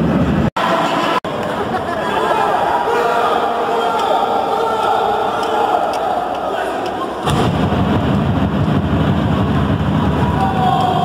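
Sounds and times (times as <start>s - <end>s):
loud low rumble: 7.2s - 11.0s.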